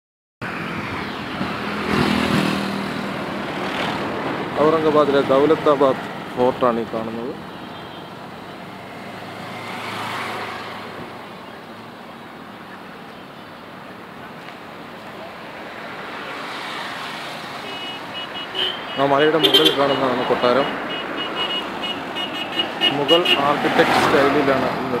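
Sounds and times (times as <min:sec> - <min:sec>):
vehicle engines: 0:00.4 - 0:25.0.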